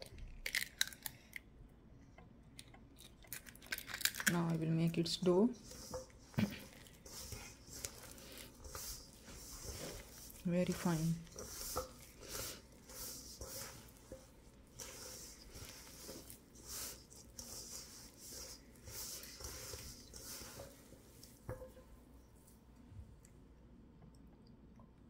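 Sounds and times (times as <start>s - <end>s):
hand kneading dough in a bowl: 4.3s - 22.6s.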